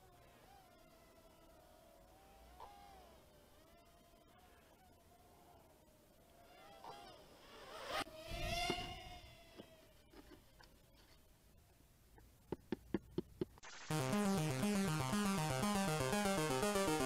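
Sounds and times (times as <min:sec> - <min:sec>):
quadcopter motors whining: 0:00.0 - 0:11.2
music: 0:13.7 - 0:17.0.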